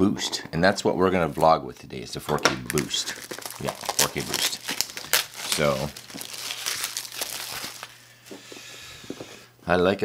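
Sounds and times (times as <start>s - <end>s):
packaging crinkling and rustling: 2.4s - 8.4s.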